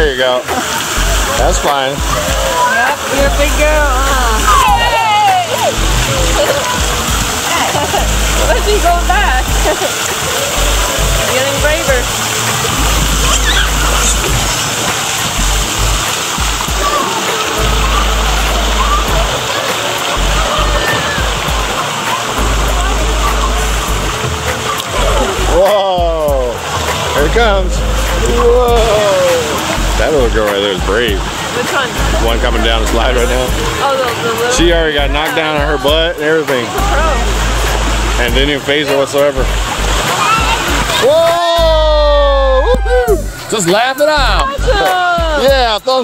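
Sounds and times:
running and splashing water: 0.0s - 46.0s
children's voices and calls: 0.6s - 27.2s, 33.3s - 38.1s, 39.8s - 43.5s, 44.4s - 45.5s.

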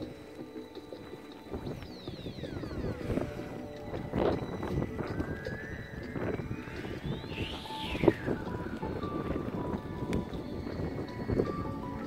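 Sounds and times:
high whistling glides: 0.0s - 12.0s
wind buffeting microphone: 0.0s - 12.0s.

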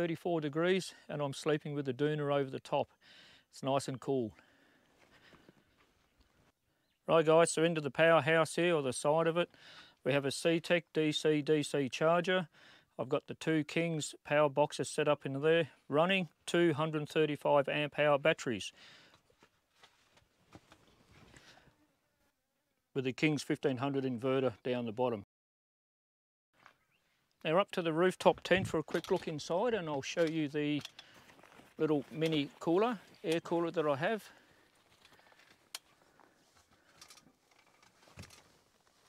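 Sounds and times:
man's voice: 27.4s - 30.9s, 31.8s - 34.3s.

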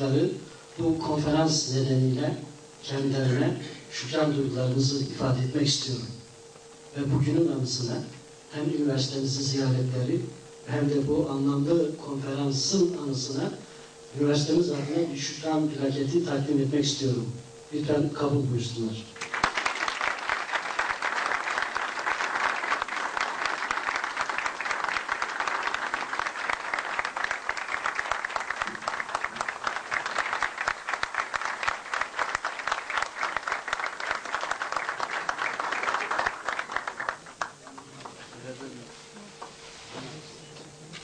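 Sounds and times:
audience applauding: 19.2s - 38.0s.

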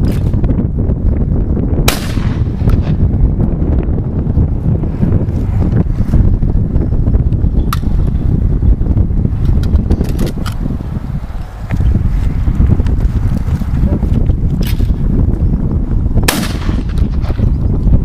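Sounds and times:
wind buffeting microphone: 0.0s - 18.0s
shotgun shot: 1.9s - 2.7s, 16.3s - 17.2s.

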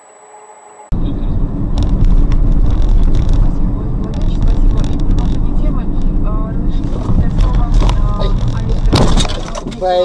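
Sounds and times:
vehicle engine and tyres rumbling: 0.0s - 10.0s.

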